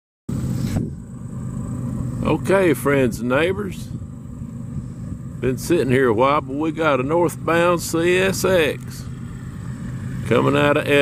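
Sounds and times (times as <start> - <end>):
low engine rumble: 0.3 - 11.0
brief hiss: 0.5 - 1.0.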